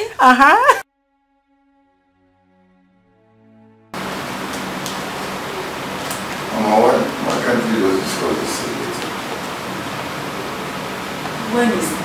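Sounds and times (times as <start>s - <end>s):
room noise hiss: 4.0s - 12.0s.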